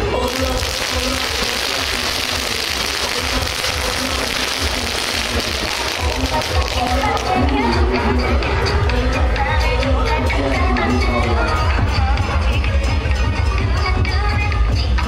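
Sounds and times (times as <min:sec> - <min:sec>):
firecrackers crackling: 0:00.0 - 0:08.0
dance music with bass beat: 0:00.5 - 0:15.0.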